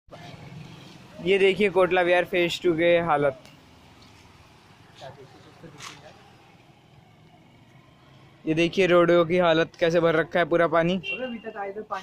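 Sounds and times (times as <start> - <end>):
faint street background noise: 0.1 - 12.0.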